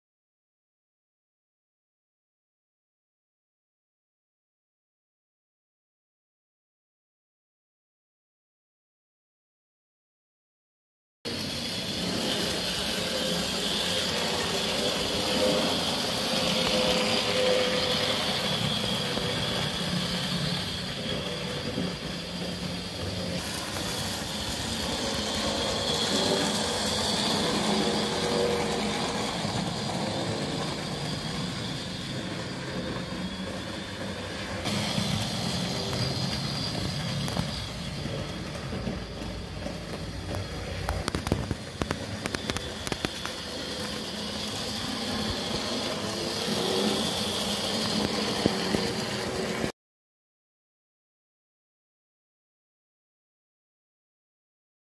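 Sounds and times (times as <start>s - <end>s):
model train motors whirring: 11.3s - 49.7s
wheels rolling on track: 11.3s - 49.7s.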